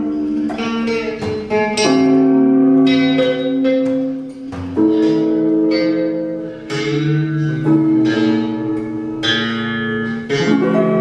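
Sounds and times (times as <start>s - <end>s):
long ringing guitar and lute chords: 0.0s - 11.0s.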